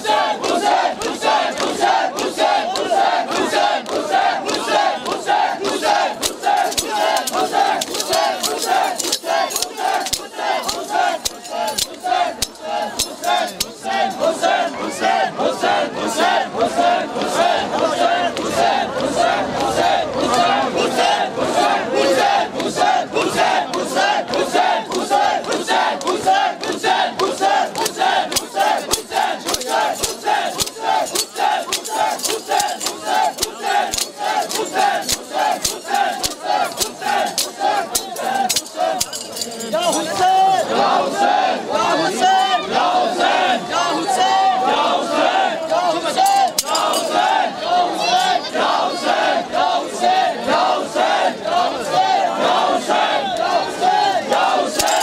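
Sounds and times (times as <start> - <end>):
men chanting in unison: 0.0 - 55.0
metallic chain clinks: 6.2 - 14.2, 27.5 - 40.5, 46.2 - 47.4, 54.8 - 55.0.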